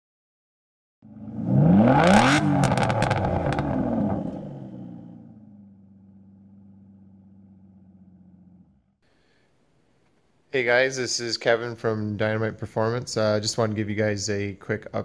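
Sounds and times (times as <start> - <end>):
car engine revving and idling: 1.0 - 9.0
sharp exhaust pops: 2.2 - 4.4.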